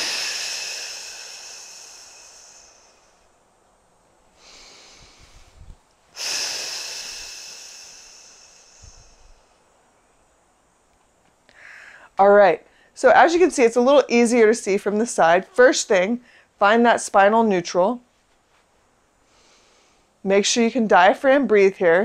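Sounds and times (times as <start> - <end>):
breath in: 0.0 - 3.3, 4.4 - 9.5, 11.5 - 12.1, 19.2 - 20.2
woman exhaling with a hiss: 0.0 - 3.4, 4.3 - 9.7, 11.5 - 12.1, 19.2 - 20.1.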